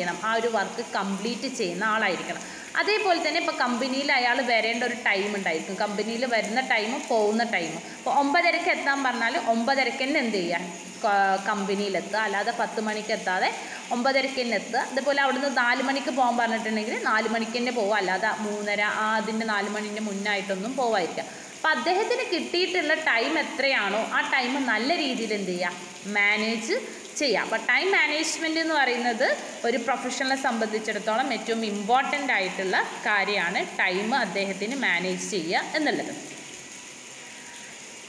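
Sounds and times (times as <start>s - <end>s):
faint constant tone: 0.0s - 38.0s
steady hiss: 0.0s - 38.0s.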